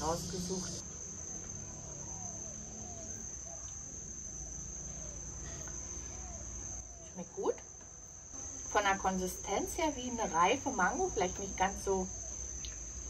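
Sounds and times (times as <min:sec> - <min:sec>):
crickets chirping: 0:00.0 - 0:13.0
faint low hum: 0:00.0 - 0:13.0.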